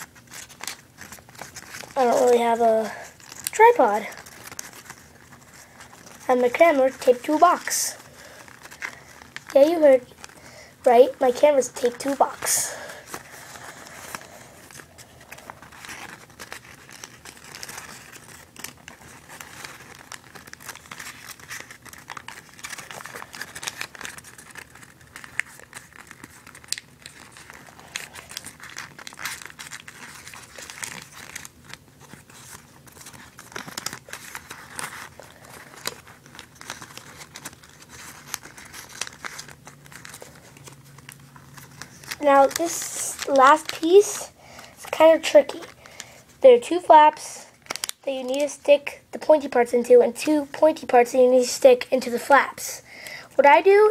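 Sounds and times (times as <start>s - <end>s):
paper crinkling while folded: 0.0s - 53.9s.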